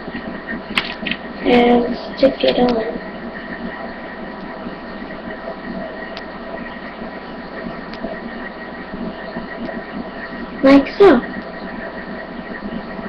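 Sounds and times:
microphone hiss and hum: 0:00.0 - 0:13.0.

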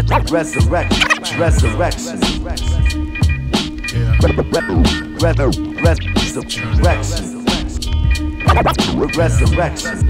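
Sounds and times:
turntable scratches: 0:00.0 - 0:01.7, 0:08.5 - 0:09.0
boom-bap hip-hop beat: 0:00.0 - 0:10.0.

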